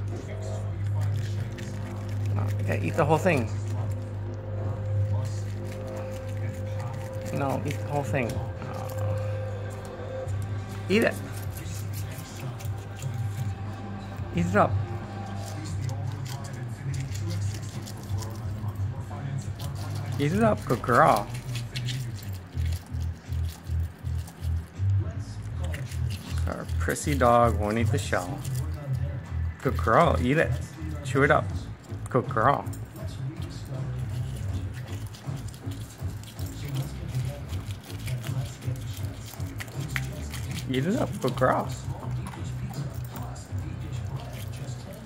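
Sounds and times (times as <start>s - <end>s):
low background drone: 0.0s - 32.1s
low steady hum: 0.0s - 45.0s
dog licking and lapping: 15.4s - 24.8s, 25.4s - 29.8s, 32.7s - 45.0s.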